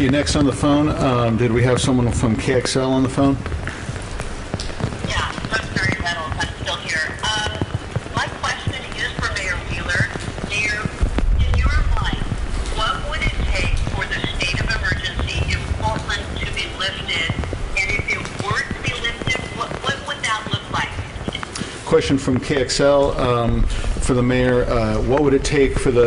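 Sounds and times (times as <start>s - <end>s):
muffled voice speaking: 5.0s - 26.0s.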